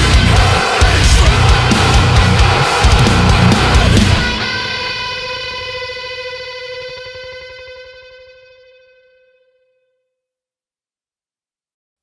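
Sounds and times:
distorted electric guitar chord ringing: 0:00.0 - 0:09.7.

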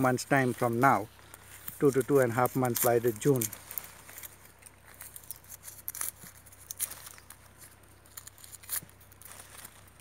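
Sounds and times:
hands tying string: 0:00.0 - 0:10.0
leaves brushing: 0:00.0 - 0:10.0.

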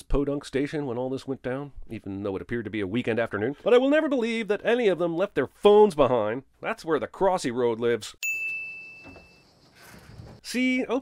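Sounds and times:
bright bell ding: 0:08.2 - 0:09.5.

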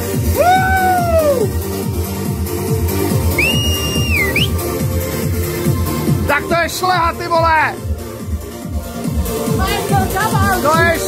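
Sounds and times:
trance dance music: 0:00.0 - 0:11.0
high whistle-like tone: 0:03.3 - 0:04.7.

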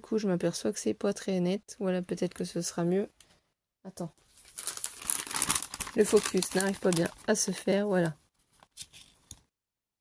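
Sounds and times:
paper crinkling and rustling: 0:04.3 - 0:09.2.

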